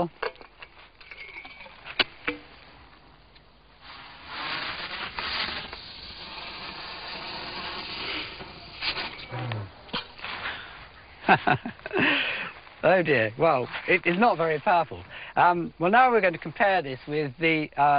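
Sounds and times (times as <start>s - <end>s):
hissing fizz of burning charge: 3.8s - 9.4s
firework mortar click: 4.1s - 10.4s.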